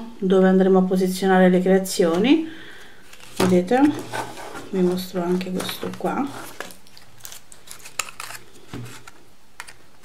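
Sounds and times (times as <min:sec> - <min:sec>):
hands handling cardstock card: 0:04.1 - 0:09.8.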